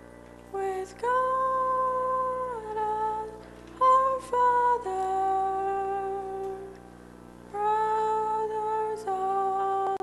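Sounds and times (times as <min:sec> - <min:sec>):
person singing a sustained melody: 0:00.0 - 0:10.0.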